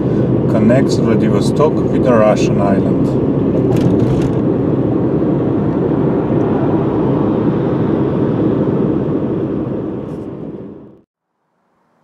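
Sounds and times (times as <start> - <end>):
car road noise: 0.0 - 11.1.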